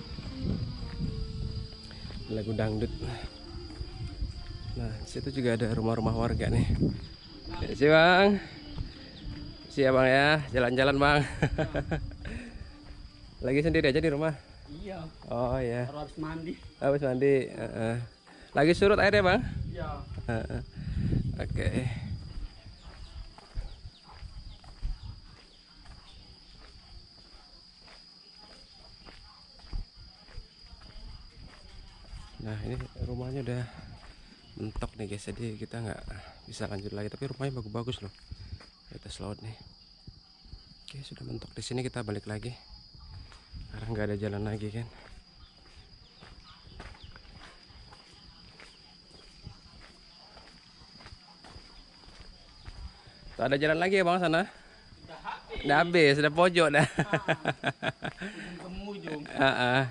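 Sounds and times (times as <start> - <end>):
footsteps on earth and concrete: 0.0 - 41.6, 42.2 - 59.9
high-pitched insect drone: 0.0 - 59.9.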